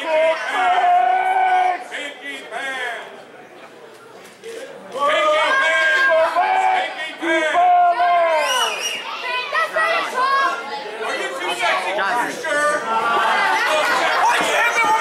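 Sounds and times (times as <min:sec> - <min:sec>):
people shouting and calling out: 0:00.0 - 0:03.0, 0:04.9 - 0:15.0
crowd chatter in a hall: 0:00.0 - 0:15.0.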